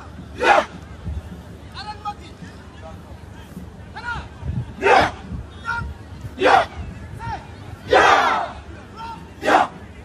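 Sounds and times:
group shouting battle cry: 7.9s - 8.6s, 9.4s - 9.7s.

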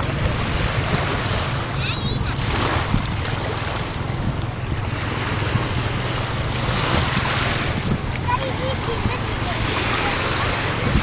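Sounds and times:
waves washing onto pebbles: 0.0s - 11.0s
wind buffeting microphone: 0.0s - 11.0s.

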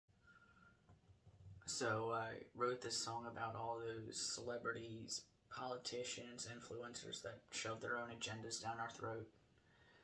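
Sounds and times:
faint high hum: 1.6s - 10.0s
man speaking: 1.7s - 9.3s.

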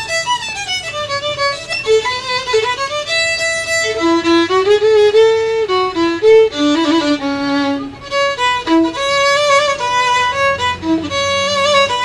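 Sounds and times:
bowed violin melody: 0.0s - 12.0s.

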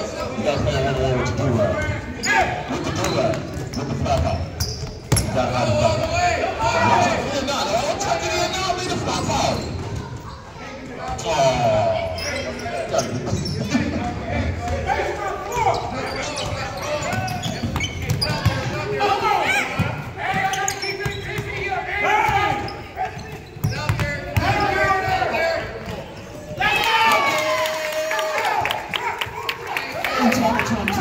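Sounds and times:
voices of people: 0.0s - 31.0s.

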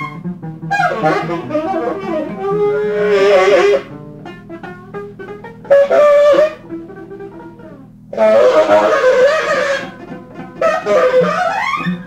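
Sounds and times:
double bass: 0.0s - 12.0s
saxophone playing: 0.0s - 12.0s.

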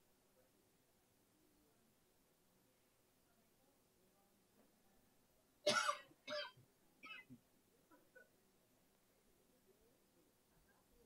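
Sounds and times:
person coughing: 5.7s - 7.3s.

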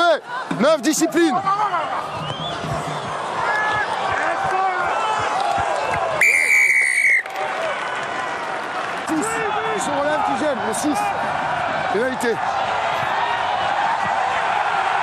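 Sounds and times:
crowd shouts: 0.0s - 15.0s
stadium crowd noise: 0.0s - 15.0s
referee whistle blast: 6.2s - 7.3s.

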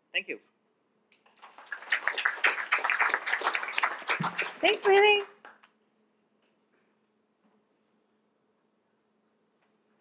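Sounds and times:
audience applause: 1.4s - 5.7s.

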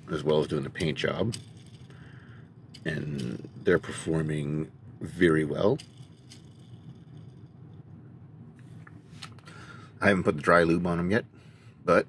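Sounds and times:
low steady hum: 0.0s - 12.0s
toy car handling noises: 0.1s - 4.3s, 5.4s - 7.4s.

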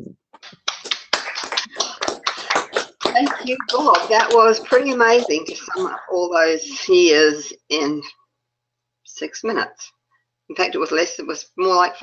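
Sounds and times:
hands clapping quickly: 0.0s - 6.1s.

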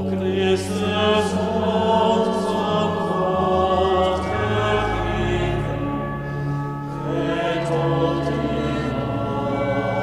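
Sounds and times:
choir singing: 0.0s - 10.0s
low organ notes: 0.0s - 10.0s.

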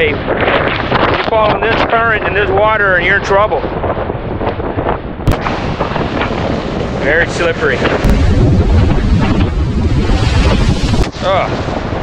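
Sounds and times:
wind buffeting microphone: 0.0s - 12.0s
sharp thump: 5.2s - 6.4s, 7.8s - 9.6s
waves breaking against rocks: 5.3s - 12.0s.

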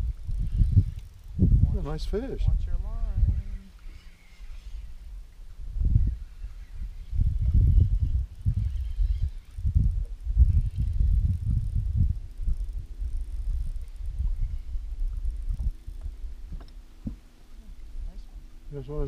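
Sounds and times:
faint steady hum: 0.0s - 19.0s
wind buffeting microphone: 0.0s - 19.0s.

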